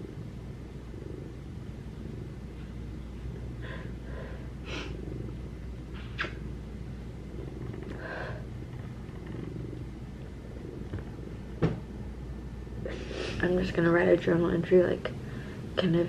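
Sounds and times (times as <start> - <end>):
cat purring: 0.0 - 16.0.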